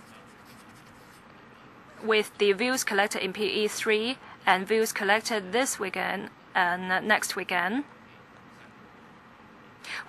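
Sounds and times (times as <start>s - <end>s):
microphone background hiss: 0.0s - 10.0s.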